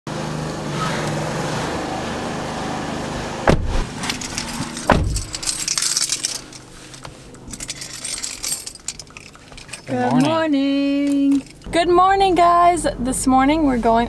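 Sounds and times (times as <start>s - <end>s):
car doors shutting: 2.9s - 5.9s
car keys jingling: 3.9s - 11.8s.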